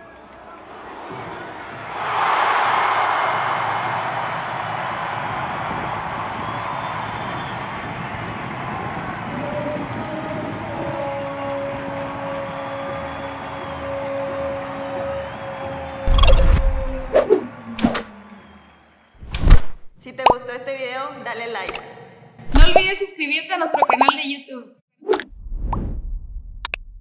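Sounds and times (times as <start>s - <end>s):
stadium crowd cheering: 0.0s - 19.3s.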